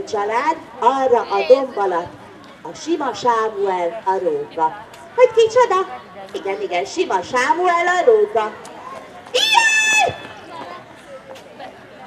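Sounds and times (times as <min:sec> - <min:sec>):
audience murmur: 0:00.0 - 0:12.0
person shouting high cry: 0:09.4 - 0:10.2.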